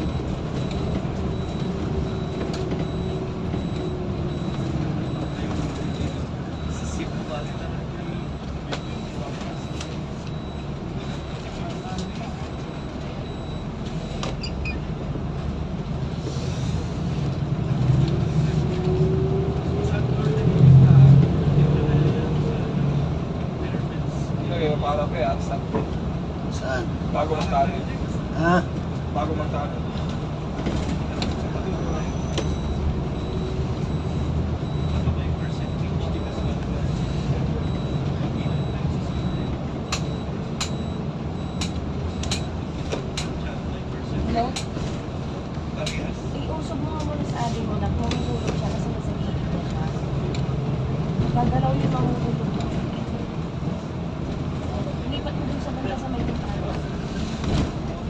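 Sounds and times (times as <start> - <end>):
road noise: 0.0 - 58.0
vehicle engine: 0.0 - 58.0.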